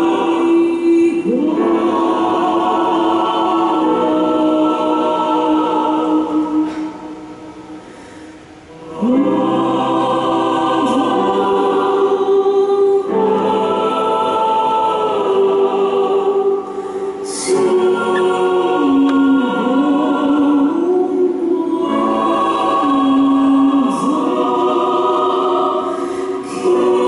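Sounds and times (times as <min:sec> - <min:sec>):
choir singing: 0:00.0 - 0:27.0.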